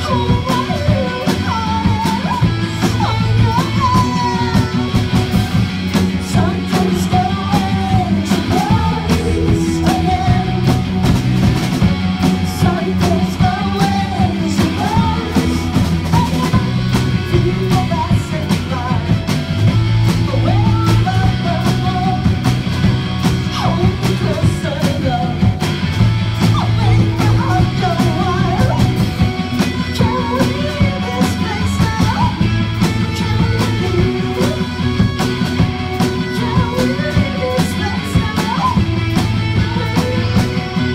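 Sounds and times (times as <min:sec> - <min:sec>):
person singing: 0:00.0 - 0:11.1, 0:12.3 - 0:19.4, 0:20.1 - 0:22.6, 0:23.5 - 0:25.6, 0:26.4 - 0:40.9
bass guitar: 0:00.0 - 0:40.9
drum beat: 0:00.0 - 0:40.9
electric guitars: 0:00.0 - 0:40.9.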